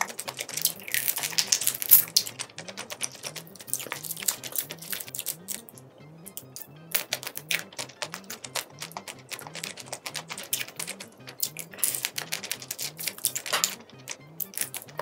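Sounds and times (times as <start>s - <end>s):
shrimp shells cracking: 0.0s - 5.8s, 6.4s - 15.0s
soft music with low beat: 0.0s - 15.0s.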